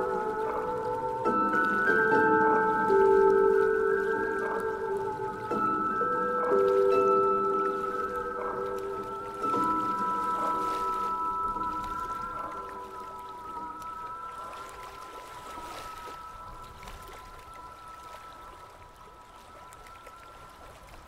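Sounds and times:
soft ambient instrumental music: 0.0 - 21.0
water trickling: 0.0 - 21.0.

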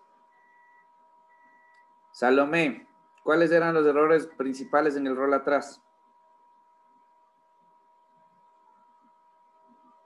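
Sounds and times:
faint steady electronic tone: 0.0 - 10.0.

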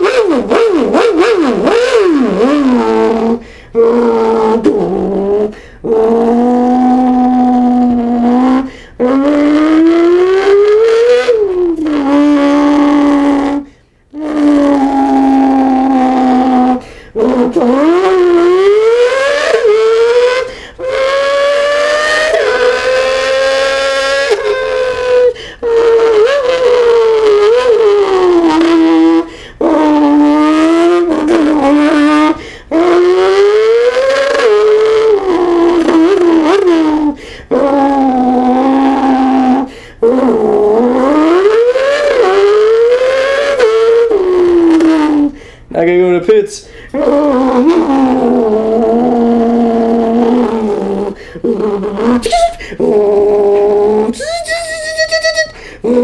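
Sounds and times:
man imitating engine with mouth: 0.0 - 56.0.

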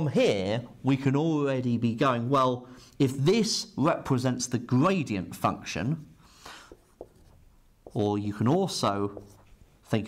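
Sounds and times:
marker writing on whiteboard: 6.5 - 10.0.

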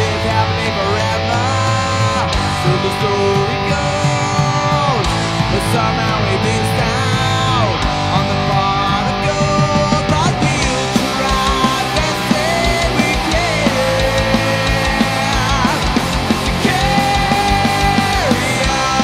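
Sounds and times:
bass and drums: 0.0 - 19.0
electric guitar lead: 0.0 - 19.0.

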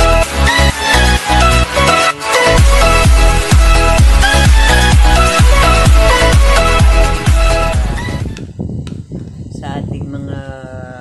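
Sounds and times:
person speaking: 9.4 - 11.0.

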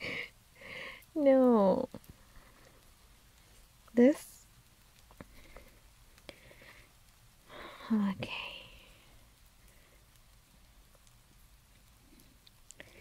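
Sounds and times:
faint small clicks: 4.6 - 7.2, 8.8 - 13.0
woman whispering: 7.6 - 9.1.

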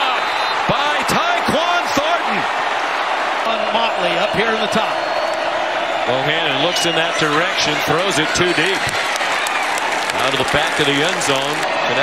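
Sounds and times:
man talking: 10.1 - 12.0.

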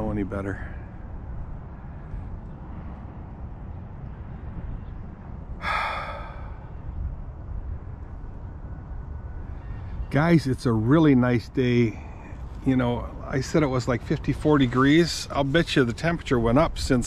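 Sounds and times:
wind rumbling on microphone: 0.0 - 17.0
breathy exhale: 5.6 - 6.8.

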